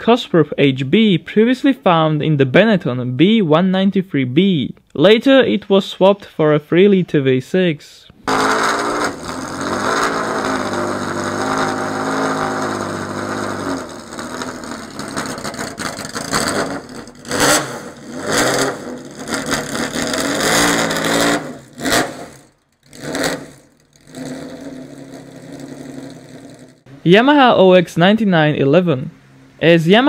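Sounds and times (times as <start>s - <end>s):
racing engine revving: 8.1s - 27.0s.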